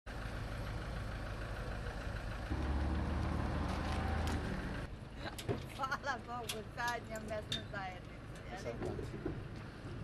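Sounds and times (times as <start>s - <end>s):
truck engine idling: 0.1s - 5.1s.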